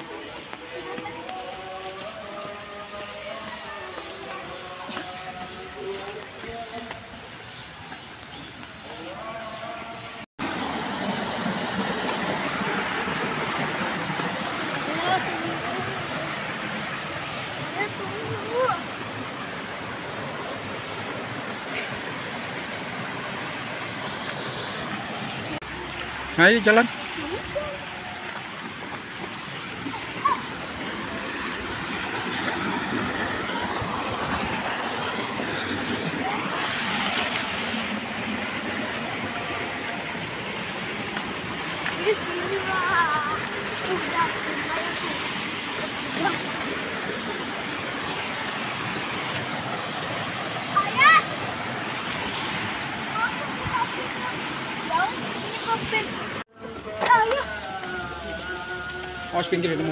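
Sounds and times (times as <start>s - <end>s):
water rushing along rocky stream: 0.0s - 59.9s.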